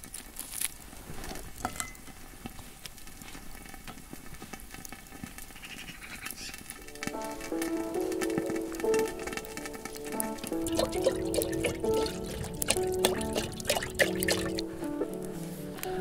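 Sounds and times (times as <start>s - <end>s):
burning coals crackling and popping: 0.0s - 16.0s
music with plucked melody: 7.0s - 16.0s.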